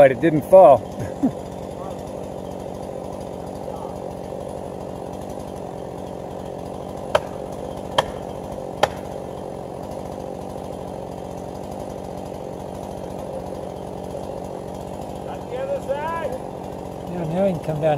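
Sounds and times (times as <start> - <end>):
chainsaw idling: 0.0 - 17.9
sharp knocks: 7.1 - 9.1.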